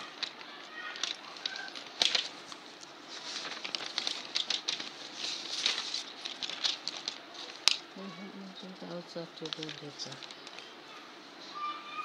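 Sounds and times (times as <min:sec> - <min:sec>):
rustling and crackling: 0:00.0 - 0:11.7.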